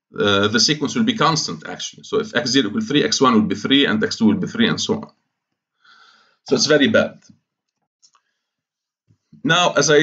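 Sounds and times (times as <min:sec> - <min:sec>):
faint mouse clicks: 0:07.2 - 0:08.3.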